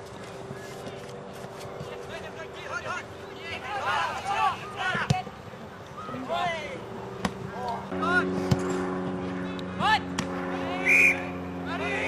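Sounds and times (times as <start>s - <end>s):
people shouting and calling: 2.1s - 5.3s.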